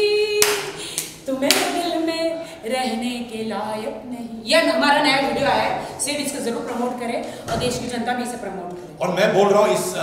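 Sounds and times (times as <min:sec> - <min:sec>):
sharp hand claps: 0:00.4 - 0:01.8.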